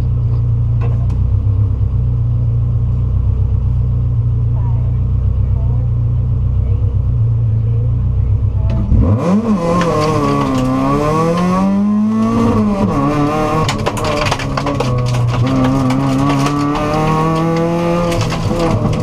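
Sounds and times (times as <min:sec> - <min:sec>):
car engine revving: 0:00.0 - 0:19.0
tyres on gravel: 0:09.0 - 0:19.0.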